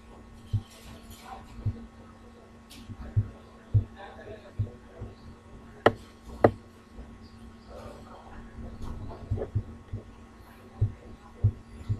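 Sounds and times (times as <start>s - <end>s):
faint electrical hum: 0.0s - 11.9s.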